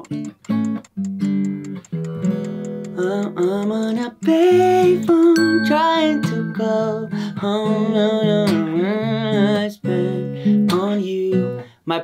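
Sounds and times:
acoustic guitar strummed chords: 4.5s - 10.7s.

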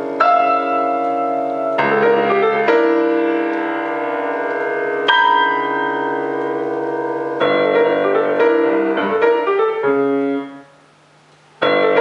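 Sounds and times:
piano chords ringing: 0.0s - 11.0s, 11.6s - 12.0s.

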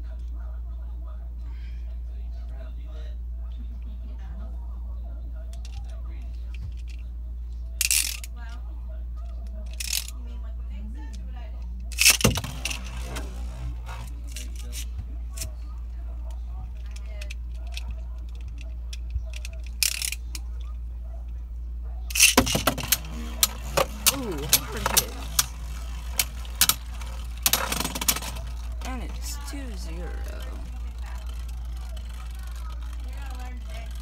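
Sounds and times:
spinning tops clicking and knocking: 7.8s - 8.3s, 19.3s - 20.3s, 22.1s - 34.0s.

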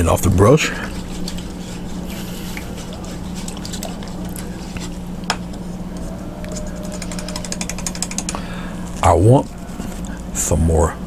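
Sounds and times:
steady low hum: 0.0s - 11.0s
paintbrush in water container: 0.3s - 5.0s.

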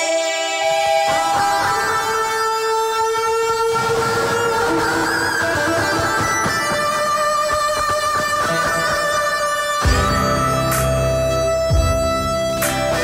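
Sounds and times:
person singing: 0.0s - 3.2s
electric guitar sustained notes: 0.0s - 13.0s.

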